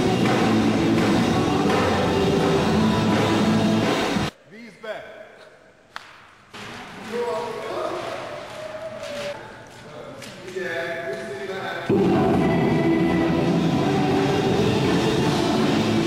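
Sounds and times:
rock music: 0.0s - 4.3s, 11.9s - 16.0s.

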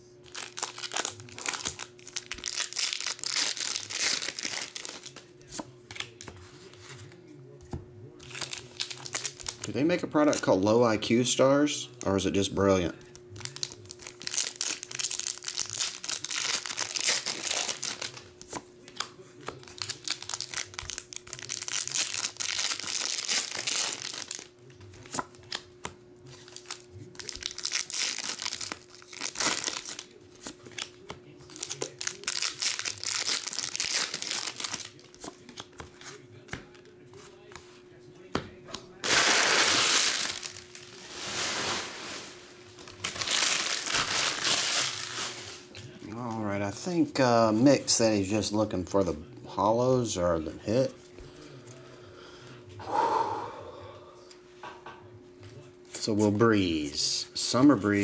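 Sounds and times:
foil wrappers crinkling and tearing: 0.2s - 7.0s, 8.2s - 10.6s, 11.9s - 25.7s, 26.3s - 36.8s, 38.9s - 48.0s.

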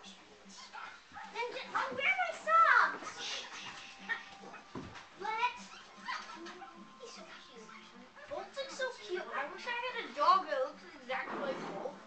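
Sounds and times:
dog whimpering and yipping: 5.6s - 6.8s.

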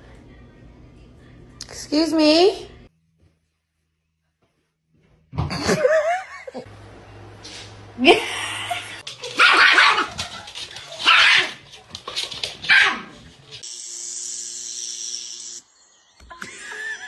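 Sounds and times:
dog barking loudly: 9.4s - 10.3s, 11.0s - 11.6s, 12.6s - 13.2s.

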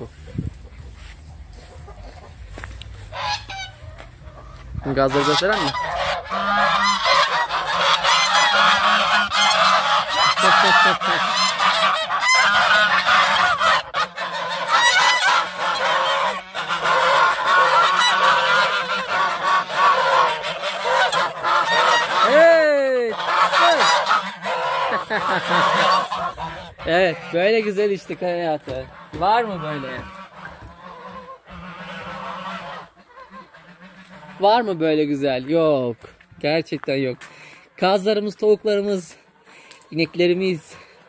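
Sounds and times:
geese honking: 0.0s - 35.4s.

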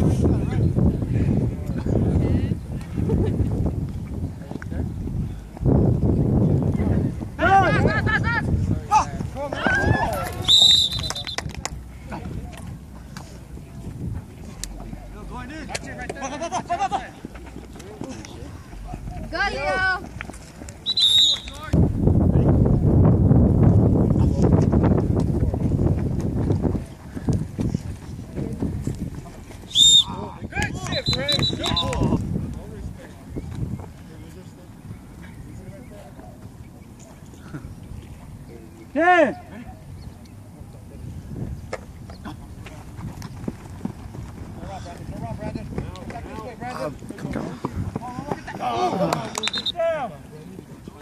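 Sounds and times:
wind on microphone: 0.0s - 10.5s, 11.4s - 15.4s, 21.6s - 36.0s, 39.9s - 49.0s
people shouting: 8.8s - 10.6s, 39.0s - 39.7s
referee's whistle blast: 10.4s - 11.4s, 20.8s - 21.6s, 29.7s - 30.2s, 30.9s - 32.0s, 49.4s - 49.8s
footsteps sprinting on grass: 24.6s - 30.3s, 41.6s - 49.4s.

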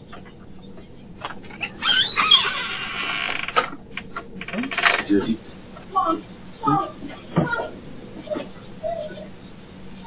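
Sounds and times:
door handle squeaking: 1.8s - 5.4s.

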